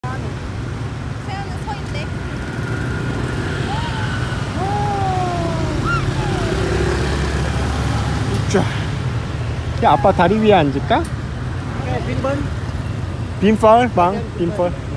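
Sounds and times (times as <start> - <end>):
passing cars and motorbikes: 0.0 - 14.9
scattered voices: 3.8 - 9.0.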